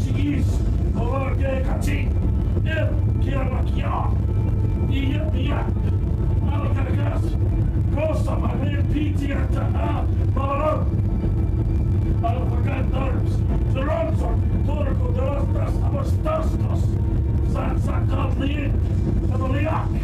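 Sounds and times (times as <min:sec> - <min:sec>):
muffled voices talking: 0:00.0 - 0:11.4, 0:12.0 - 0:20.0
steady low rumble: 0:00.0 - 0:20.0.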